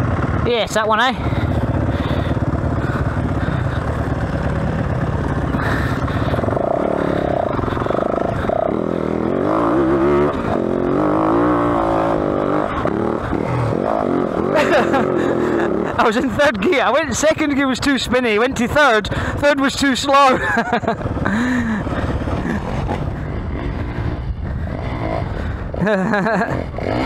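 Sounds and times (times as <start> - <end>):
dirt bike engine revving: 0.0 - 19.4, 20.2 - 27.0.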